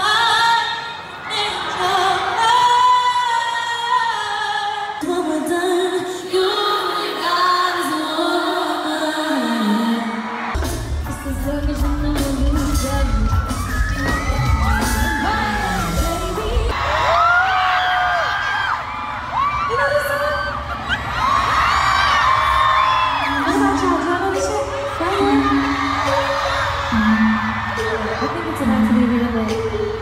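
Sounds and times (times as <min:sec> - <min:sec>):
woman singing: 0:00.0 - 0:16.8, 0:23.2 - 0:30.0
amplified pop music: 0:00.0 - 0:18.3, 0:19.6 - 0:30.0
fans whooping: 0:10.1 - 0:30.0.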